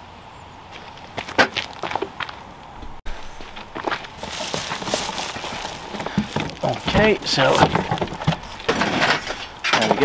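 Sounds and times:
cardboard rustling and scuffing: 3.4s - 9.4s
box handling knocks and clicks: 4.4s - 10.0s.

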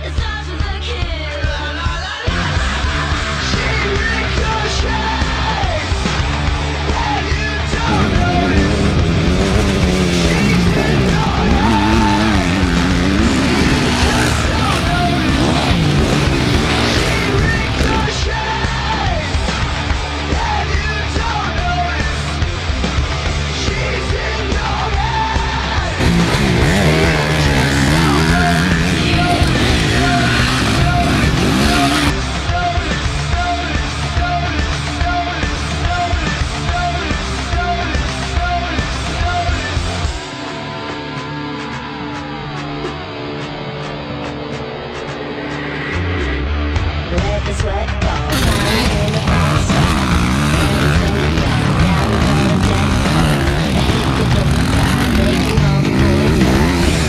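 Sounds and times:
rock music with steady beat: 0.0s - 57.0s
dirt bike engine revving: 2.3s - 38.2s, 48.3s - 57.0s.

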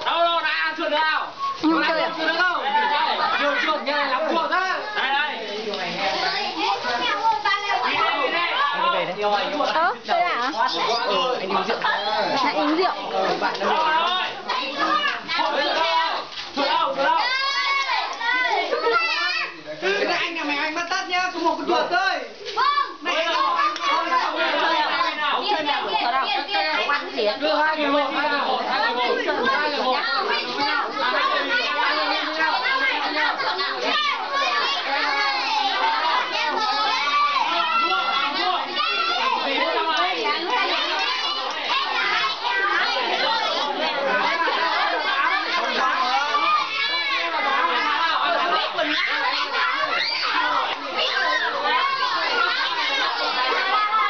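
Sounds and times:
children shouting: 0.0s - 9.7s, 10.6s - 54.0s.

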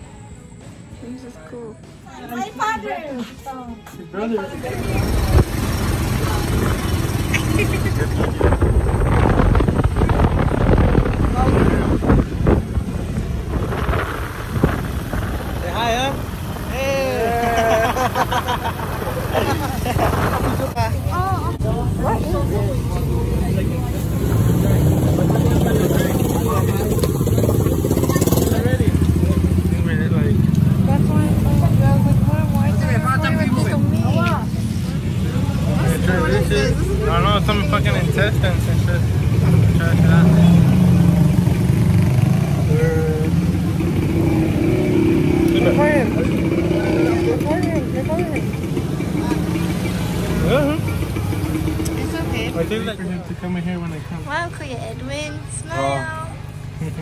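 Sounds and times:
people's voices: 0.0s - 57.0s
street noise: 0.0s - 57.0s
vehicle engine rumble: 0.0s - 57.0s.

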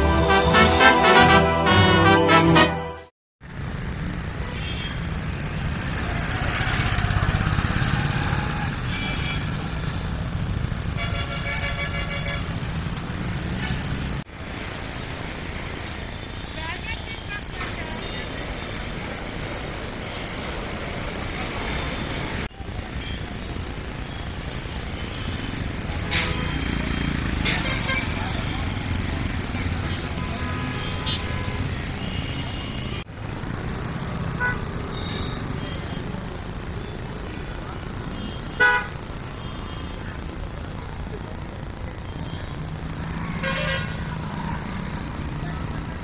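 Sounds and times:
traffic rumble: 3.4s - 46.0s
vehicle horn toots: 29.9s - 33.0s, 38.2s - 39.9s.

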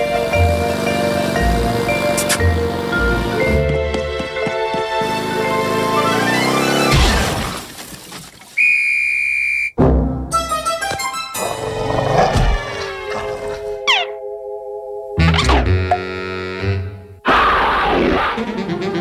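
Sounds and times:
cartoon music: 9.8s - 11.8s, 12.6s - 19.0s
comic sound effects: 15.2s - 18.7s.

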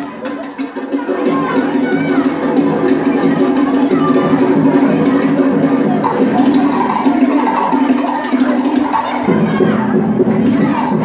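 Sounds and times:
children cheering and shouting: 0.0s - 11.0s
dance music: 1.1s - 11.0s.

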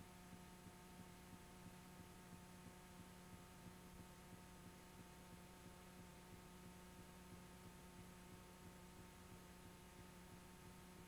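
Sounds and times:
faint electrical hum: 0.0s - 11.0s
soft tape hiss: 0.0s - 11.0s.

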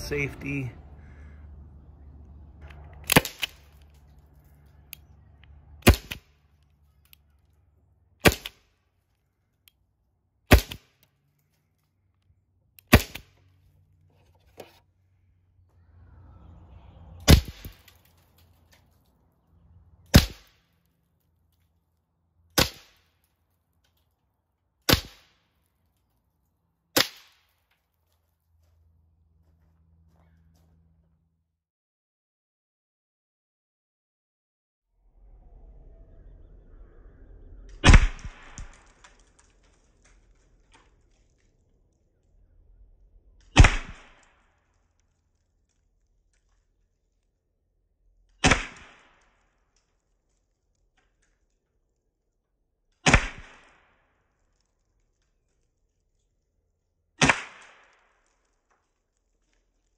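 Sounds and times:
launcher firing sharp pops: 3.0s - 3.8s, 5.8s - 6.4s, 8.2s - 8.7s, 10.5s - 11.0s, 12.8s - 13.4s, 17.3s - 18.0s, 20.1s - 20.6s, 22.6s - 23.1s, 24.9s - 25.4s, 27.0s - 27.5s, 37.8s - 39.5s, 43.4s - 44.5s, 48.4s - 49.5s, 53.0s - 54.0s, 57.2s - 59.1s.

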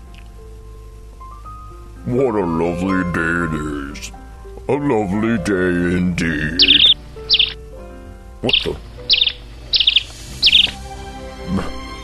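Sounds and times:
soft background music: 0.0s - 12.0s
cartoon bird chirping: 6.6s - 7.6s, 8.4s - 10.8s.

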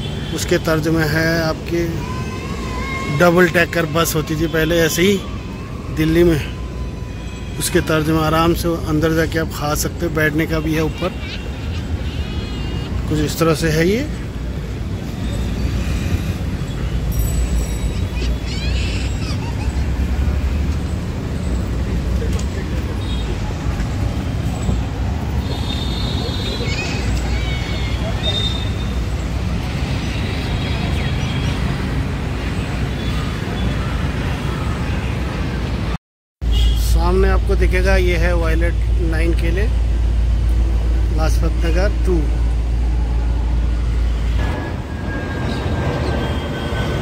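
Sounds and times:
road traffic rumble: 0.0s - 47.0s.

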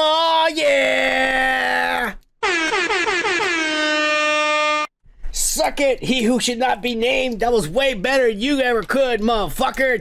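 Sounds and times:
air horn blast: 2.4s - 4.9s.

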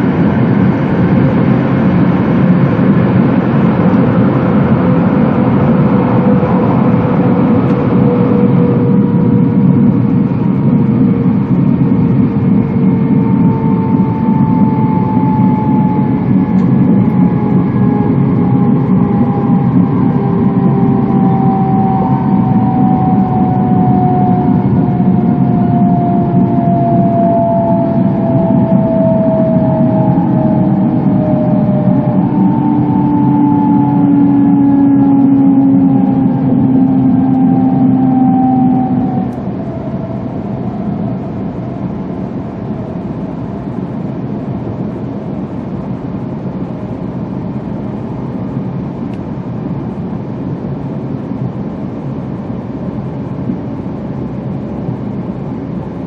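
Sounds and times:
traction motor whine: 0.0s - 45.0s.

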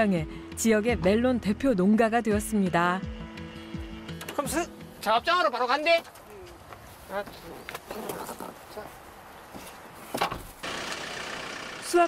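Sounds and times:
truck door shutting: 10.1s - 11.0s
truck moving off: 10.5s - 12.0s.

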